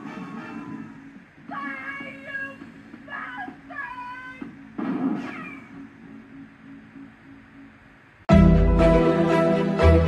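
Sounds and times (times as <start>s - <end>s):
faint low hum: 0.0s - 8.3s.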